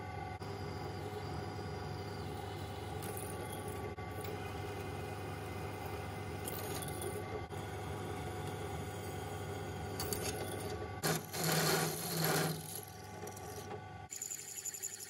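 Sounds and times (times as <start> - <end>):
drill press motor running: 0.0 - 15.0
drill bit cutting steel: 11.0 - 15.0.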